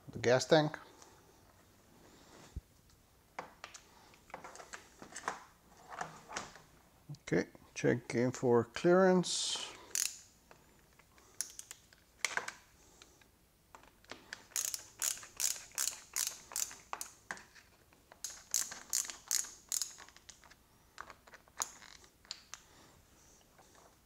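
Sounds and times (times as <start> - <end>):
hand ratchet clicking: 9.9 - 10.3, 14.4 - 17.2, 18.2 - 20.4.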